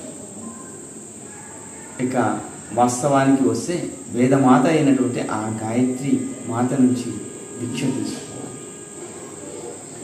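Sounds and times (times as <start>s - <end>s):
high-pitched whine: 0.0s - 10.0s.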